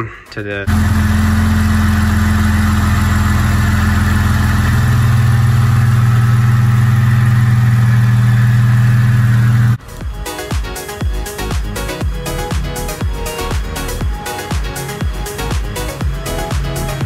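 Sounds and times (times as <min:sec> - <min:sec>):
car engine idling: 0:00.7 - 0:17.0.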